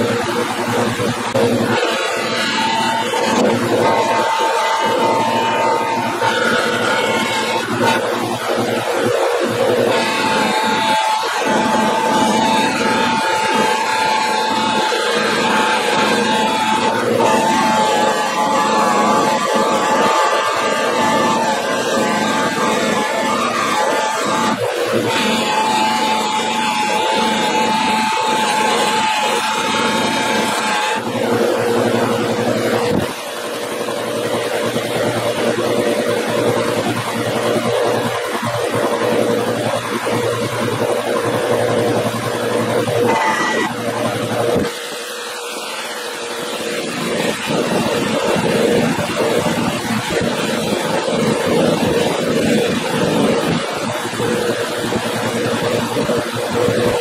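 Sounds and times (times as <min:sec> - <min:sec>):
bench buffer motor whine: 0:00.0 - 0:57.0
metal shaft against buffing wheel: 0:00.0 - 0:57.0.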